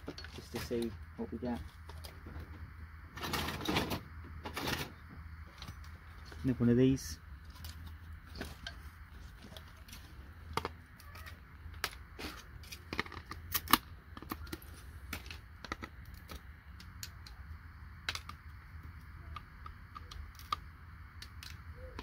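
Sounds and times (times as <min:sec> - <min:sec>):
low steady rumble: 0:00.0 - 0:22.0.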